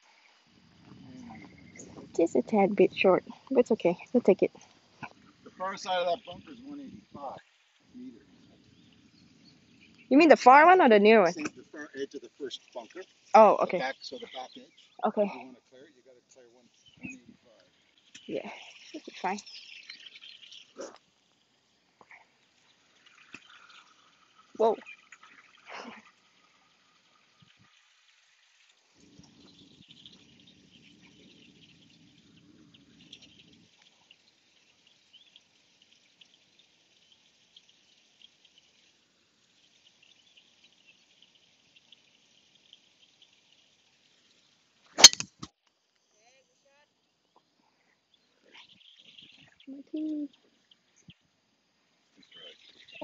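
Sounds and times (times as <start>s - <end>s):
golf club striking ball: 45.0s - 45.4s.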